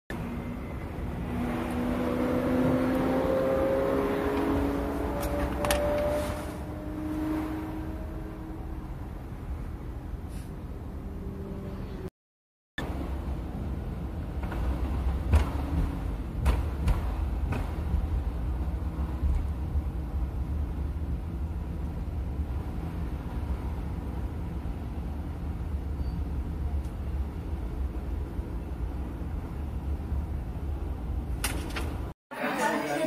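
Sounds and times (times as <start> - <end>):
car road and engine rumble: 0.1 - 12.1, 12.8 - 32.6.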